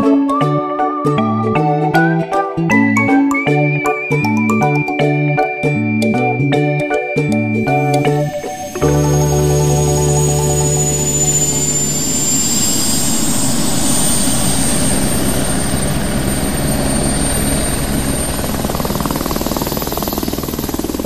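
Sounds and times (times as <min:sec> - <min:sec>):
background music: 0:00.0 - 0:12.3.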